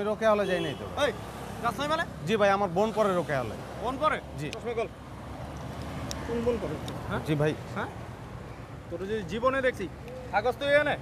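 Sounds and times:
car passing: 0.8s - 11.0s.

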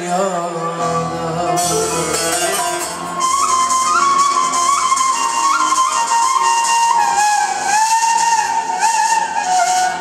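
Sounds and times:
wind instrument melody: 0.5s - 10.0s.

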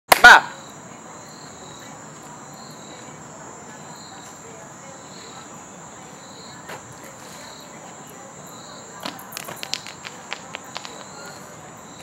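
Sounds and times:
crickets chirping: 0.1s - 12.0s.

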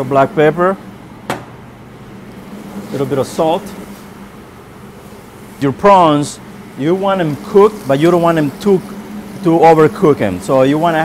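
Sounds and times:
kitchen ventilation hum: 0.0s - 11.0s.

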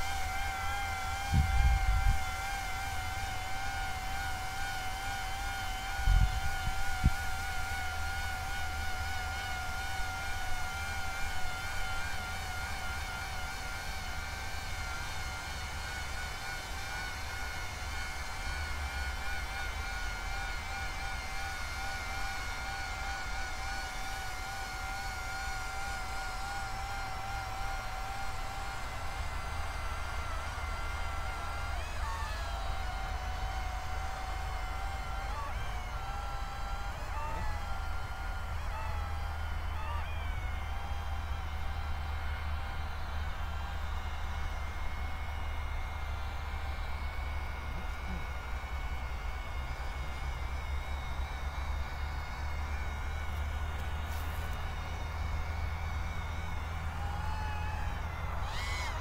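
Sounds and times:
drone propellers whining: 0.0s - 59.0s
wind rumble on microphone: 1.2s - 2.4s, 6.0s - 7.4s.

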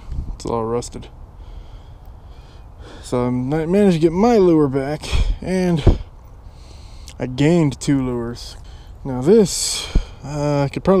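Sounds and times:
soft breathing close to microphone: 1.3s - 3.2s, 6.0s - 7.2s.

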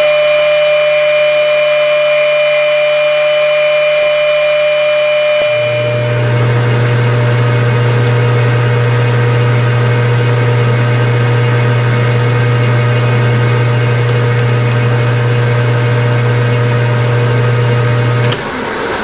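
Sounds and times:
drill boring into metal: 0.0s - 6.4s
lathe motor and gear whine: 0.0s - 19.0s.

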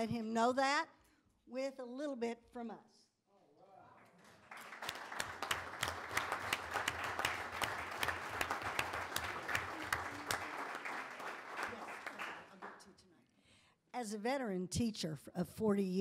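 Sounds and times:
people applauding: 3.9s - 13.1s.

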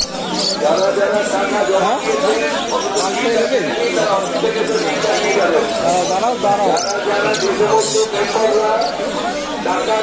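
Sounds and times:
faint bird chirps: 0.0s - 1.0s
people talking: 0.0s - 10.0s.

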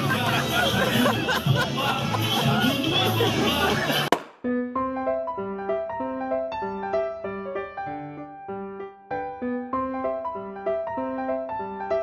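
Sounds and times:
crowd chatter: 0.0s - 4.2s
solo piano melody: 4.4s - 12.0s.

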